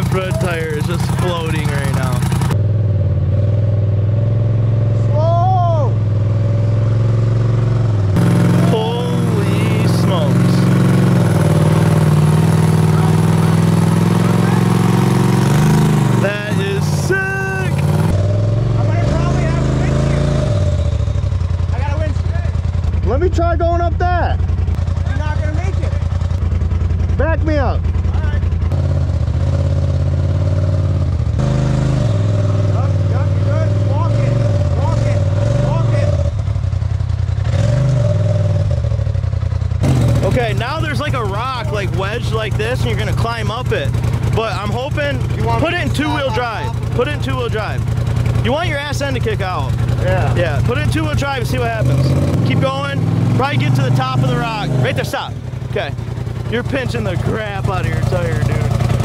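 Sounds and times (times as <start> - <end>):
voices calling: 0.0 - 2.6, 8.2 - 28.7, 39.9 - 59.0
off-road vehicle engine revving: 0.0 - 59.0.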